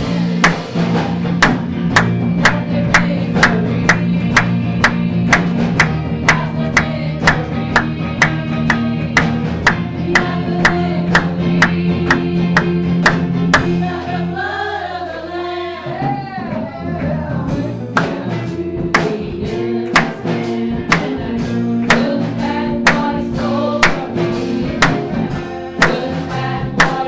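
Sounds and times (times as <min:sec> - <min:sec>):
steady drum beat: 0:00.0 - 0:14.3, 0:15.8 - 0:27.0
keyboard and bass chords: 0:00.0 - 0:27.0
people singing: 0:00.0 - 0:27.0.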